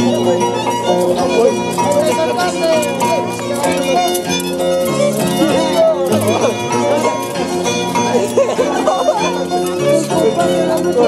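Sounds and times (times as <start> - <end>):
bowed violin melody: 0.0 - 11.0
harp plucked notes: 0.0 - 11.0.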